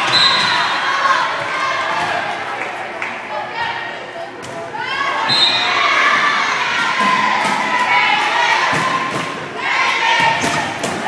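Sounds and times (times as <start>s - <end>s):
girls shouting and cheering: 4.8s - 11.0s.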